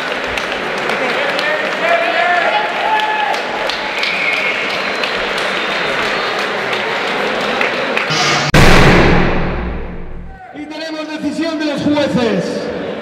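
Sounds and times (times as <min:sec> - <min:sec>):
people clapping: 0:00.0 - 0:08.1
crowd cheering and shouting: 0:01.4 - 0:03.7, 0:10.0 - 0:10.8.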